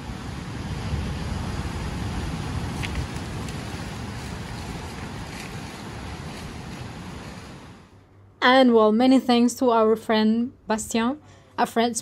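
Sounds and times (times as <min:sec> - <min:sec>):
wind on microphone: 0:00.0 - 0:07.9.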